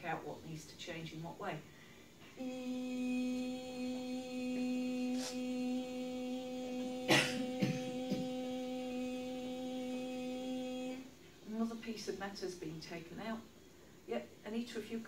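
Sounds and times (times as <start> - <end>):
woman humming a steady note: 2.4 - 12.0.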